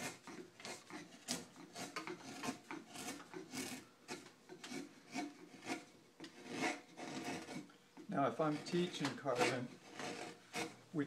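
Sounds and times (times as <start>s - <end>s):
gouge shaving wood: 0.0s - 11.0s.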